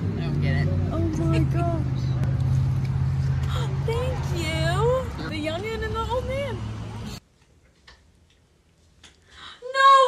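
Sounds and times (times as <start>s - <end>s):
outdoor noise: 0.0s - 10.0s.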